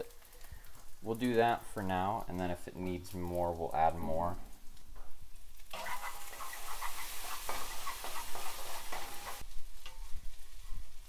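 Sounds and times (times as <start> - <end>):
rice sizzling in a frying pan: 0.0 - 11.0
wooden spatula scraping and tapping: 5.8 - 10.9.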